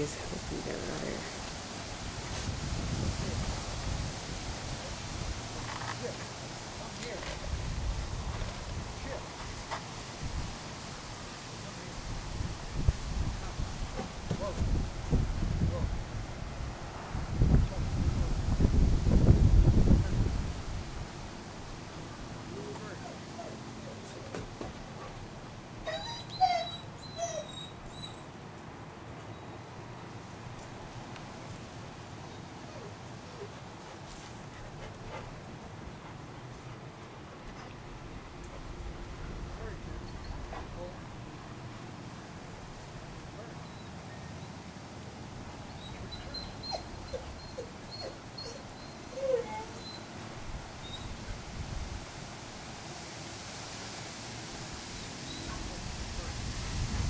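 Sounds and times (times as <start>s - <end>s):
dog whining: 25.8s - 28.3s, 45.7s - 50.0s.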